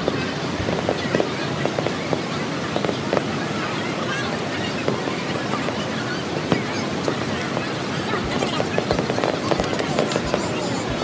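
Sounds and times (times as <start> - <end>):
fireworks booming: 0.0 - 4.0, 4.6 - 11.0
background hubbub: 0.0 - 11.0.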